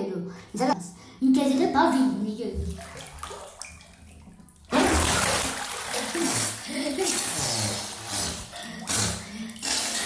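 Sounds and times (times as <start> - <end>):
water splashing and streaming: 2.6 - 10.0.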